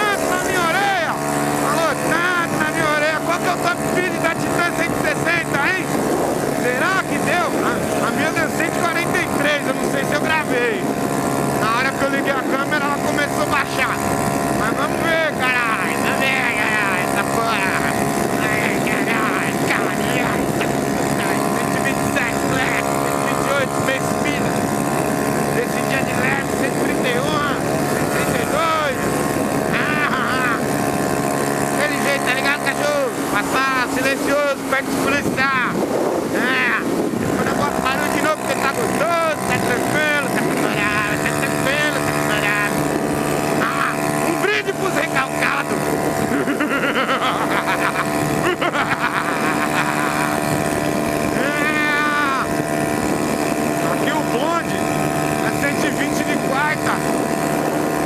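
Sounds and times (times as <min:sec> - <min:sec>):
motorcycle engine at high revs: 0:00.0 - 0:58.0.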